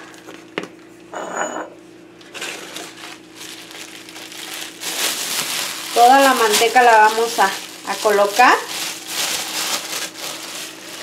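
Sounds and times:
plastic bag rustling and crinkling: 0:02.3 - 0:11.0.

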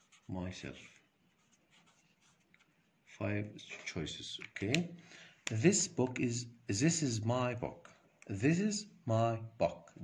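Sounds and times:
marker scratching on paper: 0:00.0 - 0:03.1.

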